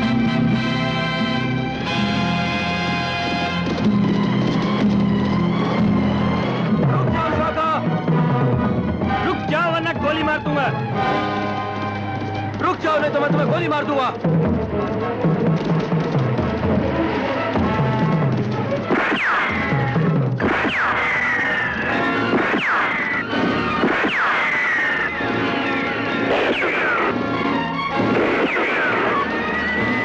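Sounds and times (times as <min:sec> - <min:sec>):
action background music: 0:00.0 - 0:30.0
ricochet whine: 0:18.7 - 0:30.0.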